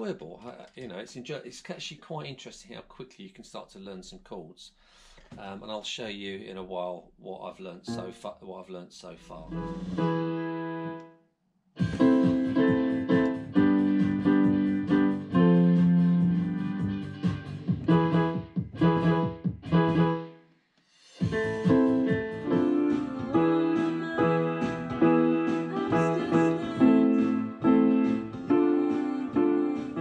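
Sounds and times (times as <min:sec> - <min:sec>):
piano notes and chords: 0:07.9 - 0:08.5, 0:09.2 - 0:11.2, 0:11.8 - 0:20.4, 0:21.2 - 0:30.0.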